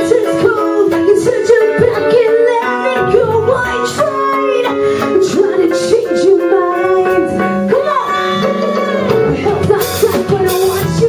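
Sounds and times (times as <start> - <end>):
live rock band playing: 0.0 - 11.0
woman singing into a microphone: 0.0 - 11.0.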